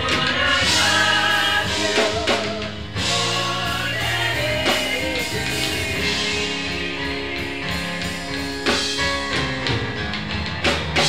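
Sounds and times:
choir singing in harmony: 0.0s - 8.9s.

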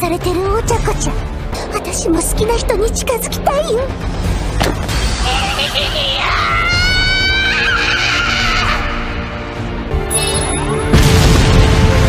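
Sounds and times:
background music: 0.0s - 12.0s
woman shrieking laugh: 7.2s - 9.0s.

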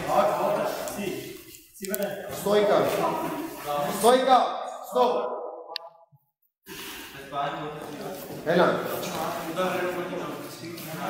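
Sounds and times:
room noise: 0.0s - 5.8s, 6.7s - 11.0s.

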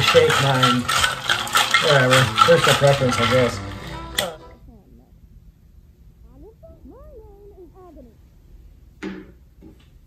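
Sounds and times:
ice rattling in cocktail shaker: 0.0s - 4.4s.

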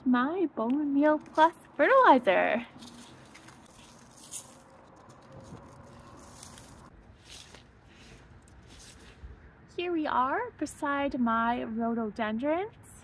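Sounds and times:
dry meal pattering onto soil: 2.7s - 9.2s.

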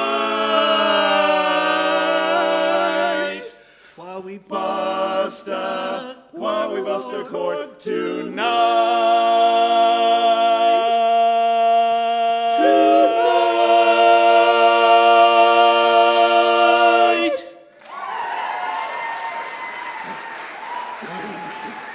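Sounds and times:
audience applause: 17.7s - 21.9s.

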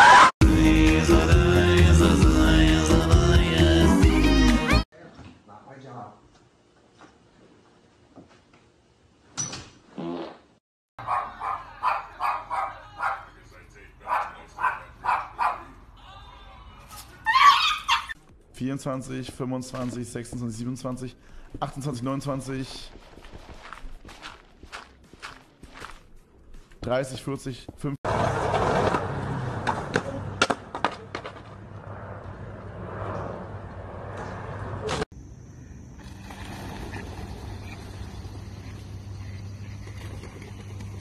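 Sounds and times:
small dog barking: 11.0s - 13.3s, 14.1s - 15.8s
skateboard clacking on concrete: 29.6s - 31.5s.

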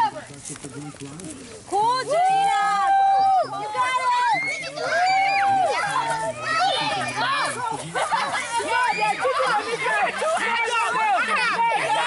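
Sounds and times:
children and adults shouting: 2.0s - 12.0s.

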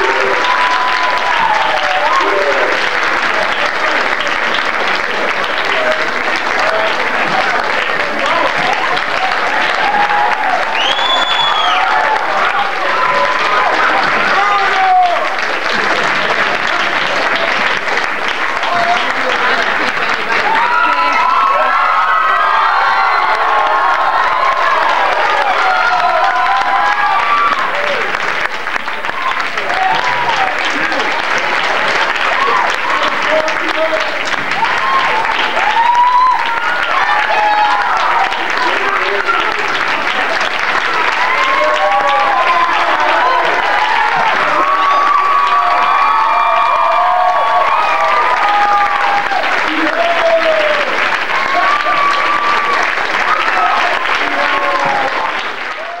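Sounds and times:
crowd cheering and whooping: 0.0s - 17.6s, 18.5s - 19.5s, 20.2s - 56.0s
audience applauding: 0.0s - 56.0s.

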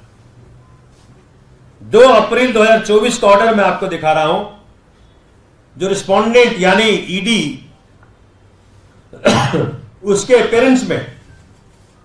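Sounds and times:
person coughing: 9.2s - 9.9s.

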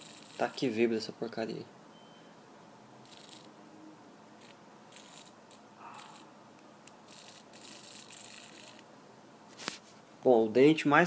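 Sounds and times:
servo buzzing: 0.0s - 0.7s, 3.0s - 3.6s, 4.4s - 8.9s.

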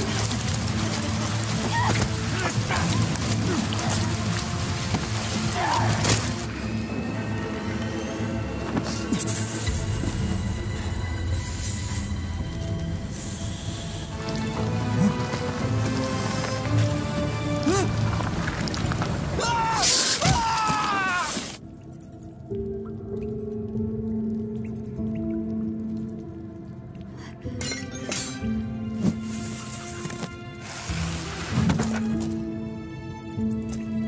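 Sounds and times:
rain hiss: 0.0s - 20.2s, 29.2s - 32.1s
film score music: 0.0s - 34.0s.

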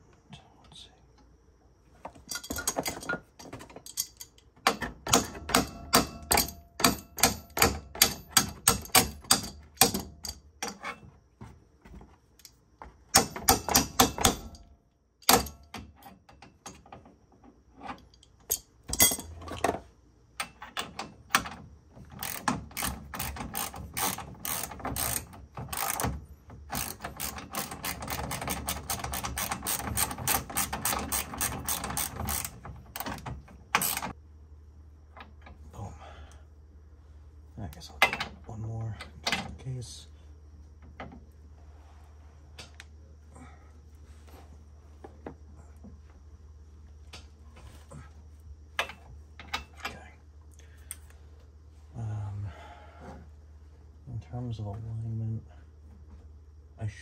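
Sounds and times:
ratchet wrench clicking: 3.9s - 10.8s, 22.2s - 33.2s, 33.8s - 34.2s.

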